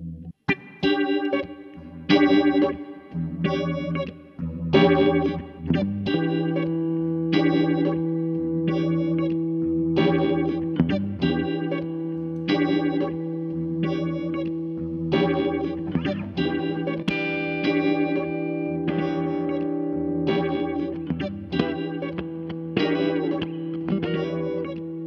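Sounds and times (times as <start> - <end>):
electric guitar chords: 0.0 - 25.0.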